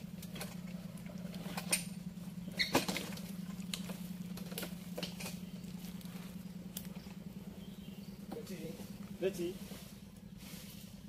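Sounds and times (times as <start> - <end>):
chainsaw engine running: 3.1 - 11.0.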